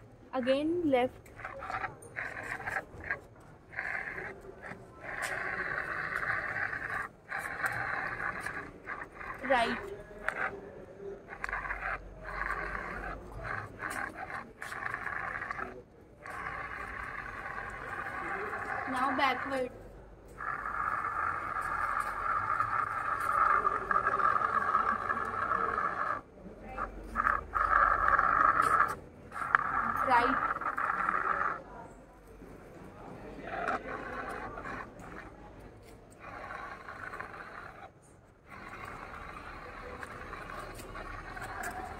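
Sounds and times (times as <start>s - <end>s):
small gear motors whirring: 0.0s - 41.9s.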